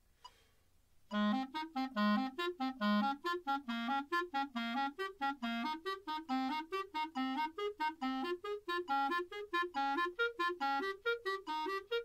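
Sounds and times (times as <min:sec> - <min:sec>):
clarinet playing short low notes: 0:01.1 - 0:12.0.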